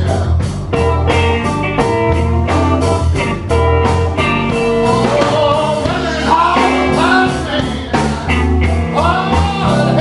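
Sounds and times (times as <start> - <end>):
drum kit: 0.0 - 10.0
electric bass: 0.0 - 10.0
electric guitar: 0.0 - 10.0.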